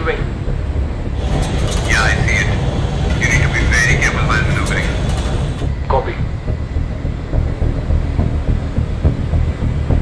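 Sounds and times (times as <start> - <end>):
jet engine rumble: 0.0 - 10.0
radio-filtered voice: 1.5 - 6.3.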